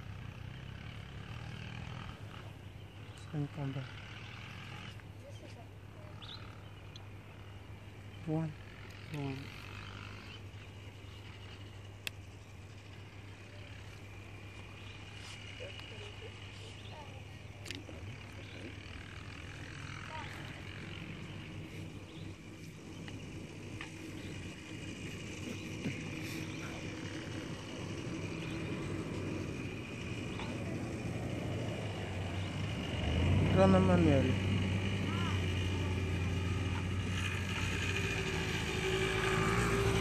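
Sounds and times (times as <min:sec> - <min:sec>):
steady low hum: 0:00.0 - 0:40.0
faint distant voices: 0:12.8 - 0:40.0.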